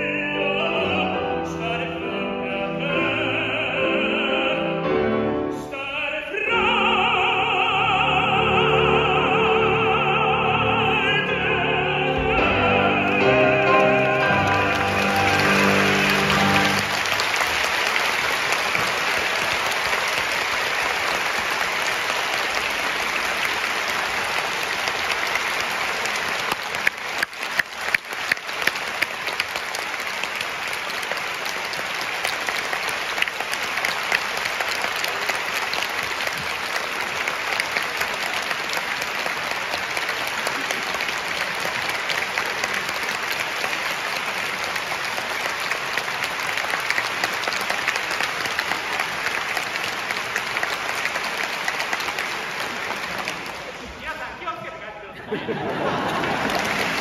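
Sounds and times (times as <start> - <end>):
large audience applauding: 6.4 - 57.0.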